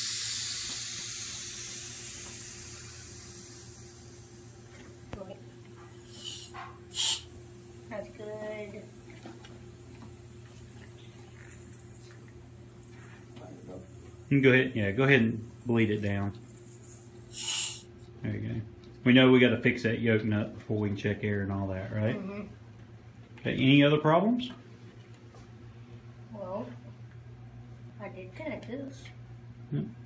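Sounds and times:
high-pressure air hissing: 0.0 - 17.9.

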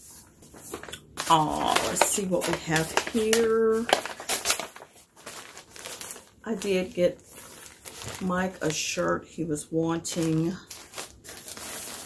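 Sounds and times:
plastic bag crinkling: 0.1 - 9.1, 10.0 - 12.0.

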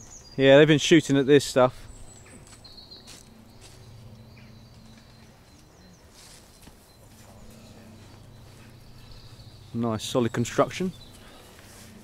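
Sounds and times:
footsteps on soft woodland ground: 0.0 - 12.0.

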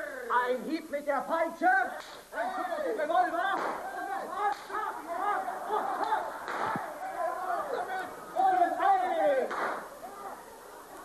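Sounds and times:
people shouting and laughing: 2.0 - 11.0.

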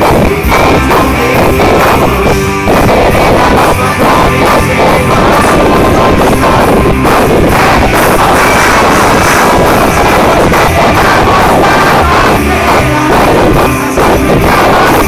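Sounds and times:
live rock band playing loud: 0.0 - 15.0.

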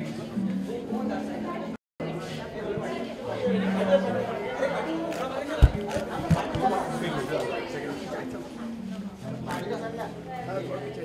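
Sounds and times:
people chattering: 0.0 - 11.0
low thumps: 5.6 - 6.8.

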